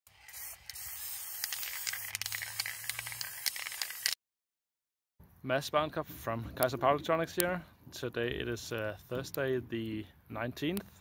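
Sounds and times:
spray paint can hissing: 0.1 - 4.2.

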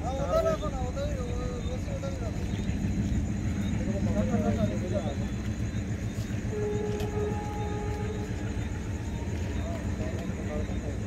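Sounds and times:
low rumble: 0.9 - 11.0.

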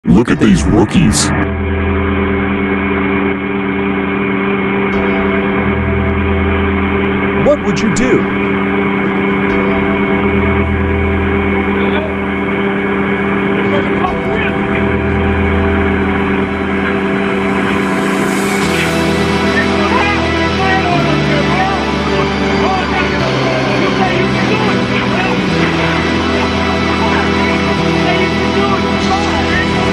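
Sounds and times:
background music: 0.0 - 29.9
diesel engine running: 0.1 - 29.9.

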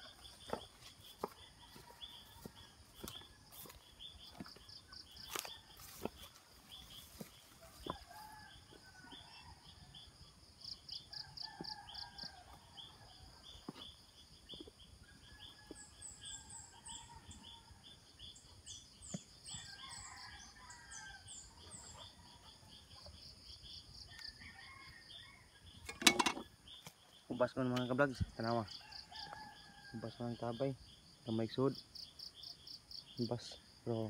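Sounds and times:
distant roosters crowing: 0.0 - 10.2, 11.1 - 13.6, 19.3 - 26.7, 28.2 - 30.7
insects chirping: 0.0 - 34.0.

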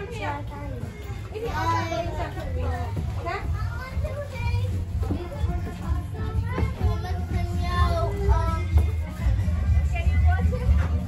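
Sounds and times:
children chattering and calling: 0.0 - 11.0.

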